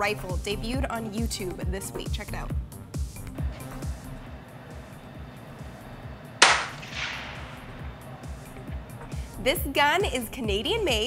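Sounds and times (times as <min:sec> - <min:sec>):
rifle shot with echo: 0:06.4 - 0:07.8.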